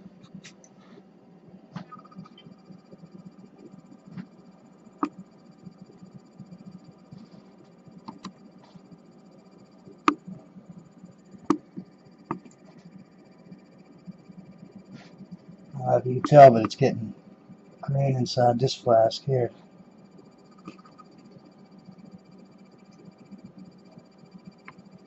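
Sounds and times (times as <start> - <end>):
faint steady hum: 0.0 - 25.0.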